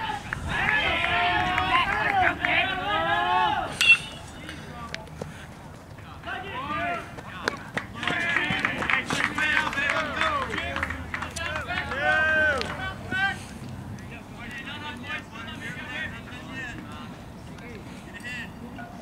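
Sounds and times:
spectators shouting and cheering: 0.0s - 4.3s, 8.0s - 13.4s
metal bat hitting ball: 3.8s - 4.4s.

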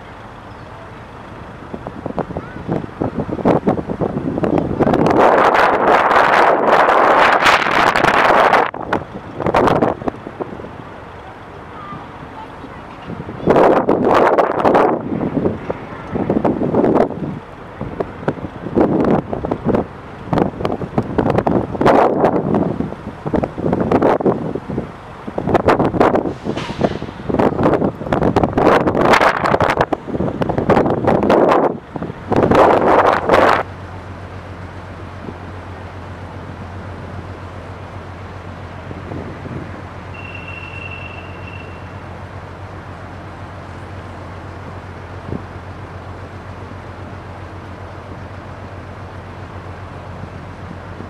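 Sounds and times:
wind buffeting microphone: 1.5s - 10.9s, 13.0s - 33.7s, 38.8s - 40.1s.

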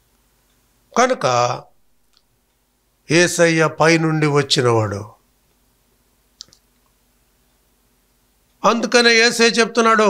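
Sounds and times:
man talking: 1.0s - 1.7s, 3.1s - 5.2s, 8.6s - 10.0s.

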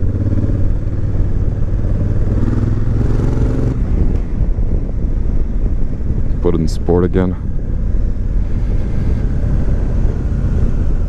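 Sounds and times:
motorcycle engine pulling steadily: 0.0s - 11.0s
ride rumble: 0.0s - 11.0s.

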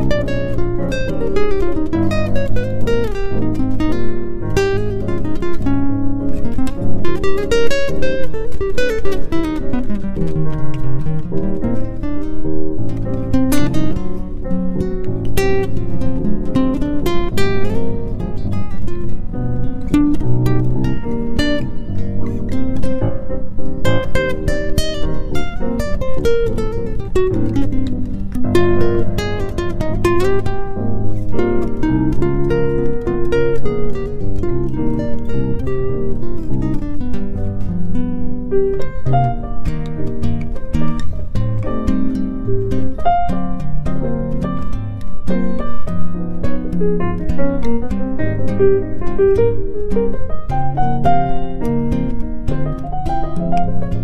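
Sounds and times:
plucked acoustic guitar music: 0.0s - 54.0s.

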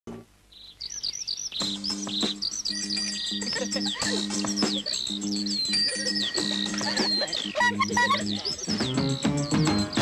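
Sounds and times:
birds chirping and trilling: 0.5s - 10.0s.

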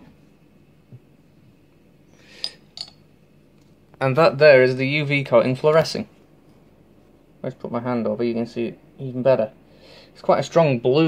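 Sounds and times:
glass lamp clinking: 2.4s - 3.0s.

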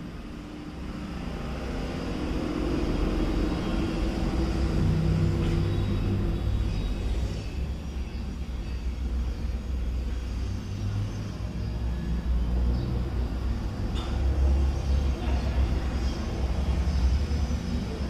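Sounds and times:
faint hum: 0.0s - 18.0s.

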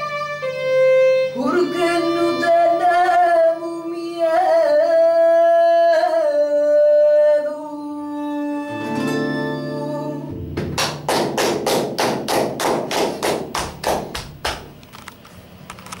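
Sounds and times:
acoustic guitar chord ringing: 8.7s - 11.7s
sharp percussive hits: 10.3s - 14.8s.

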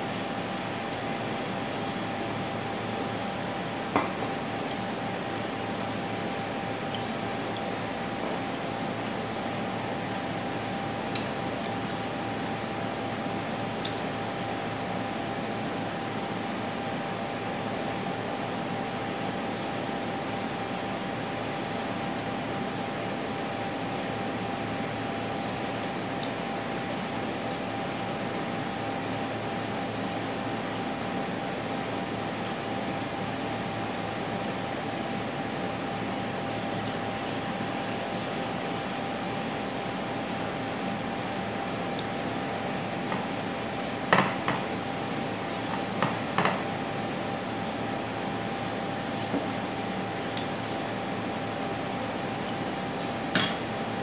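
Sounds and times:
ventilation fan noise: 0.0s - 54.0s.

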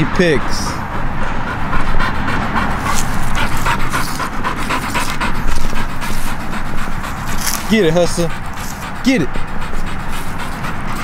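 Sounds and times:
dog panting hard: 0.0s - 11.0s.

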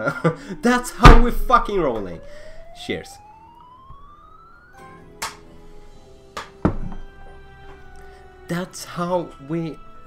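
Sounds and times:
game jingle: 0.4s - 6.2s.

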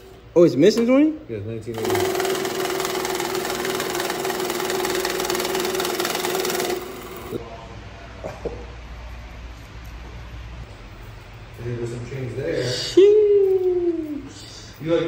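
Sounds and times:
steady hum: 0.0s - 15.0s
currency counter rattling bills: 1.7s - 7.4s.

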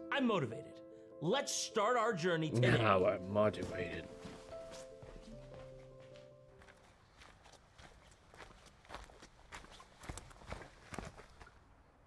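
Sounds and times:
faint footsteps walking: 3.5s - 11.6s.

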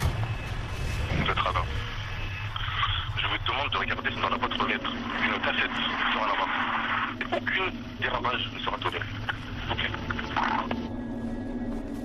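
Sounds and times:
man talking over phone line: 1.1s - 1.8s, 2.5s - 10.9s.

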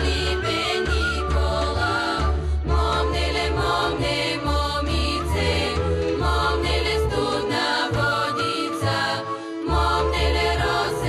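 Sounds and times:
low bass accompaniment: 0.0s - 8.3s
women singing a folk song: 0.0s - 11.0s.

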